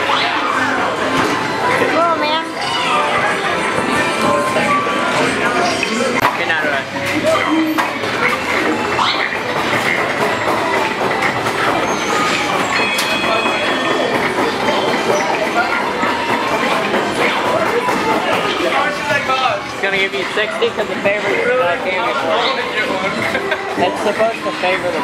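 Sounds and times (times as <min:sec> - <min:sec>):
busy arcade din with voices: 0:00.0 - 0:25.0
prize wheel spinning and clicking: 0:07.3 - 0:21.5.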